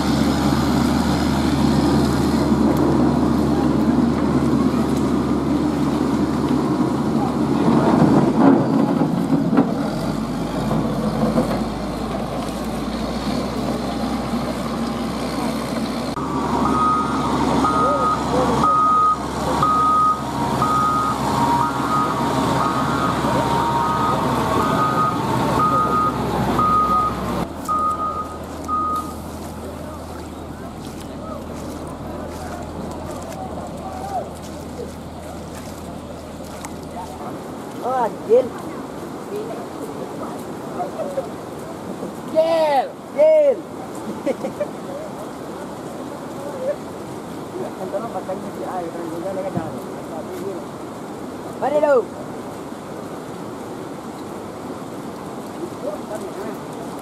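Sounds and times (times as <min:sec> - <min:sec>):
diesel engine running: 0:00.0 - 0:38.1
reversing alarm beeping: 0:16.6 - 0:29.2.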